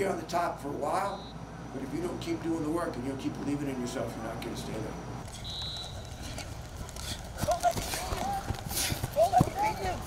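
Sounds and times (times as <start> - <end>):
footsteps running on grass: 5.2 - 10.0
runners shouting: 5.4 - 10.0.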